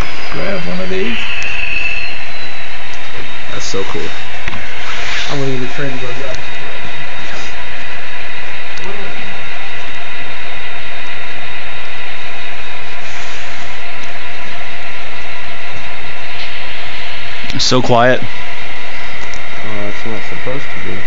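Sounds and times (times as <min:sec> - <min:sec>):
faint talk: 0:00.0 - 0:01.2, 0:03.5 - 0:04.2, 0:05.1 - 0:06.4, 0:17.5 - 0:18.3, 0:19.6 - 0:21.0.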